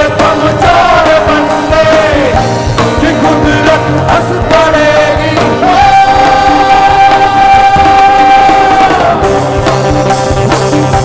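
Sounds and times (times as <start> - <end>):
man singing live: 0.0 - 9.9
band playing: 0.0 - 11.0.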